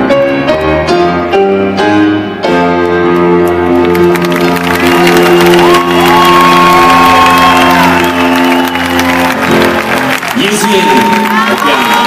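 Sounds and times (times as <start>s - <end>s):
crowd cheering and applause: 2.9s - 12.0s.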